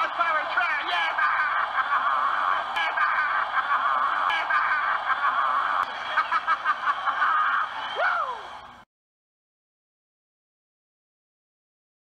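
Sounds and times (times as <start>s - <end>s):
stadium crowd cheering: 0.0s - 8.8s.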